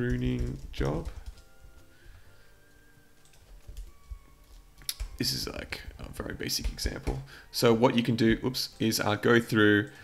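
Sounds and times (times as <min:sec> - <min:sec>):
computer keyboard keystrokes: 0:00.0 - 0:01.9, 0:03.2 - 0:05.3, 0:06.5 - 0:07.2.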